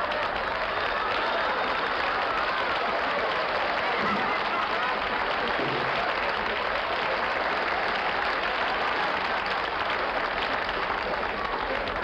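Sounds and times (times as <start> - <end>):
audience applause: 0.0 - 12.0.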